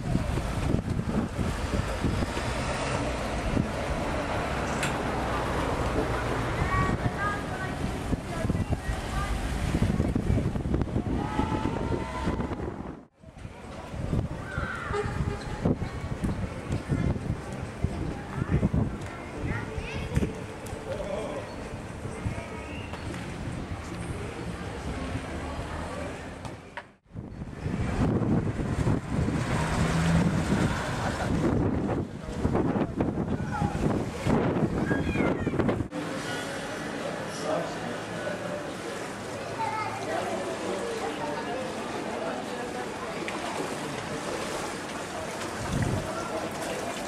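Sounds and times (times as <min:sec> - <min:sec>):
wind buffeting microphone: 0:00.0 - 0:24.9, 0:27.1 - 0:35.9, 0:45.5 - 0:46.5
faint distant voices: 0:29.5 - 0:47.0.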